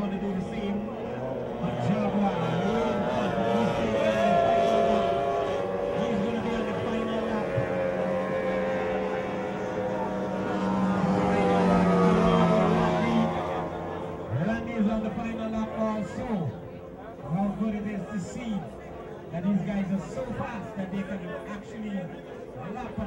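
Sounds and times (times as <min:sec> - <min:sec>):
race boat engines droning: 0:00.0 - 0:23.0.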